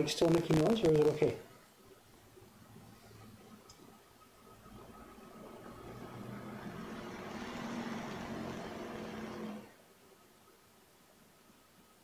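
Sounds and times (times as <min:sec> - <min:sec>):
vehicle passing on street: 0:04.4 - 0:09.8.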